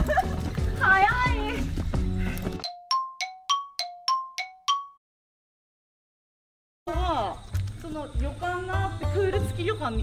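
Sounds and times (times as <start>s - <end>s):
two-note bell chime jingle: 2.6s - 5.0s.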